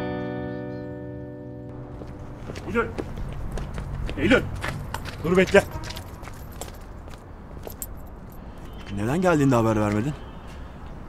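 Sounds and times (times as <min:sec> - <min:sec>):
footsteps clicking: 0:01.7 - 0:09.0
clothing jingling: 0:04.5 - 0:09.2.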